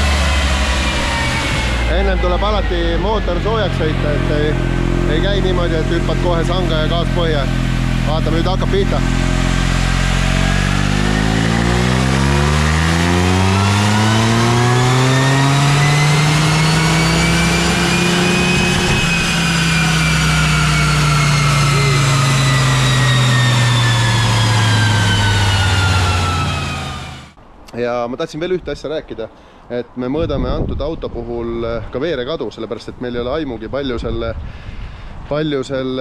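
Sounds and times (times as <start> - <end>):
car engine revving on dyno: 0.0 - 27.4.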